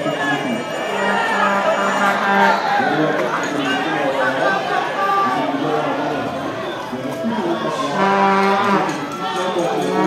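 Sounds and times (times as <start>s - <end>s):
crowd booing: 0.0s - 10.0s.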